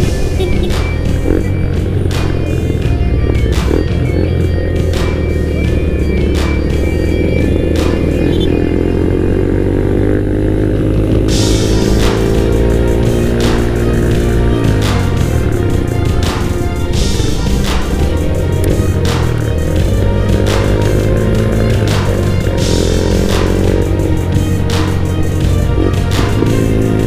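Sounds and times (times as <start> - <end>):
background music with beat: 0.0 - 27.0
motorcycle engine accelerating: 0.0 - 27.0.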